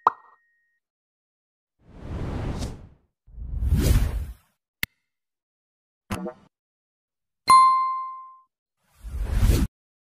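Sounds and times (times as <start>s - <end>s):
whoosh: 1.9s - 4.4s.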